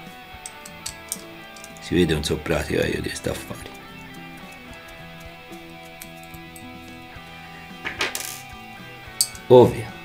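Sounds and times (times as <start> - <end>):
soft guitar music: 0.0 - 10.0
metallic clatter on desk: 0.4 - 1.9, 7.8 - 8.5
metal connectors clicking: 0.4 - 2.0, 4.0 - 7.0, 9.2 - 9.5.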